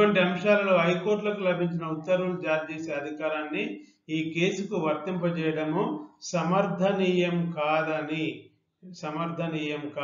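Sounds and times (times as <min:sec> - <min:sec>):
man lecturing: 0:00.0 - 0:08.3, 0:08.9 - 0:10.0.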